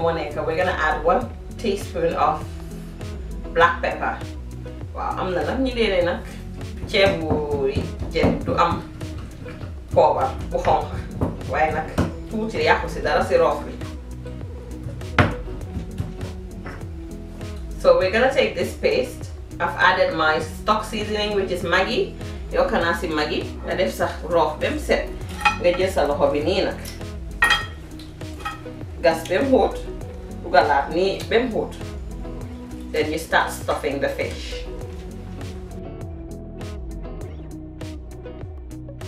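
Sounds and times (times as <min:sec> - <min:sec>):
woman talking: 0:00.0 - 0:02.4, 0:03.6 - 0:04.2, 0:04.9 - 0:08.9, 0:09.5 - 0:13.8, 0:17.8 - 0:26.9, 0:29.0 - 0:31.8, 0:32.9 - 0:34.7
quiet background music: 0:00.0 - 0:39.0
clink against pan: 0:27.4 - 0:27.8.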